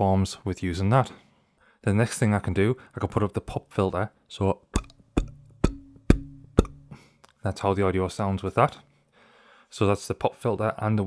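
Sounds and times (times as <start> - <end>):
sharp knocks on microphone arm: 4.8 - 6.9.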